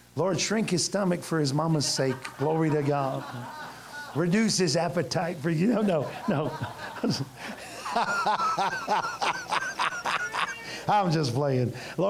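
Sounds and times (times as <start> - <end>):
high-pitched laughter: 7.9 - 10.7.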